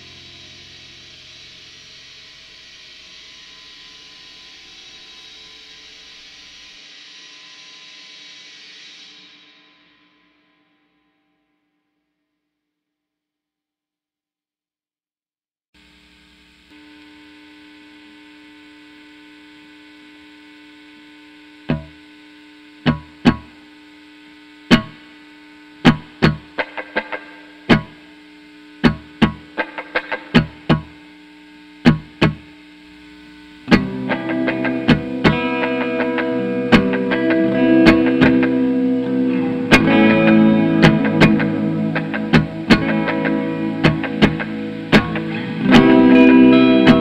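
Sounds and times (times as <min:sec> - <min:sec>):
amplifier hum: 0:00.0 - 0:06.7, 0:15.8 - 0:47.0
sustained guitar drone: 0:00.0 - 0:07.0, 0:16.1 - 0:47.0
loud distorted electric guitar: 0:00.0 - 0:10.0, 0:16.7 - 0:47.0.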